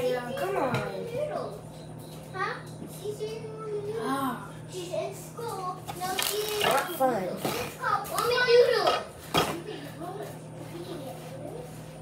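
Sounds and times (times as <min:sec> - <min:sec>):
children talking and squealing: 0:00.0 - 0:12.0
steady low hum: 0:00.0 - 0:12.0.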